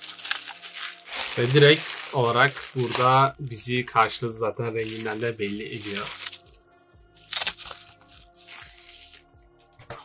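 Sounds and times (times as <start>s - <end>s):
bubble wrap crinkling and tearing: 0.0s - 9.3s
soft background music: 0.0s - 10.0s.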